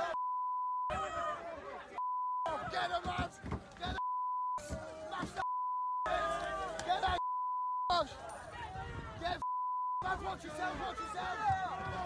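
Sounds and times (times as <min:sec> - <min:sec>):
censor bleeps: 0:00.1 - 0:01.0, 0:02.0 - 0:02.5, 0:04.0 - 0:04.6, 0:05.4 - 0:06.1, 0:07.2 - 0:07.9, 0:09.4 - 0:10.1
men shouting: 0:00.9 - 0:04.0, 0:06.1 - 0:07.2, 0:10.0 - 0:12.0.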